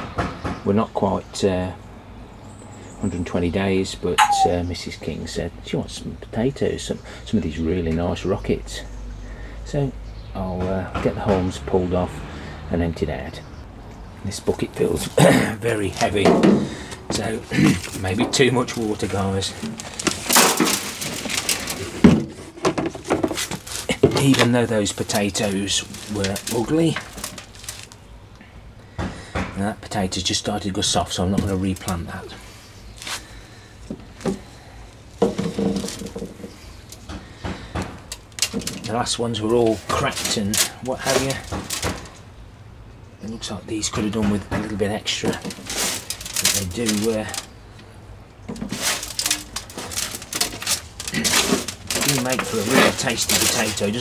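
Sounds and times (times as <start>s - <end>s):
rustling and scraping of plastic and soil: 14.1s - 42.4s, 43.3s - 54.0s
hands rummaging through compost: 14.2s - 28.1s, 30.4s - 42.2s, 43.9s - 47.8s, 48.4s - 54.0s
potatoes dropped into plastic crate: 15.0s - 28.0s, 35.2s - 37.0s, 37.6s - 42.2s, 44.0s - 47.5s, 48.5s - 54.0s.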